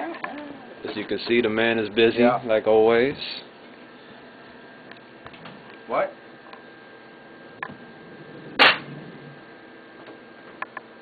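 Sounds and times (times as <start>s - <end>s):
loud sharp crack: 8.6s - 9.0s.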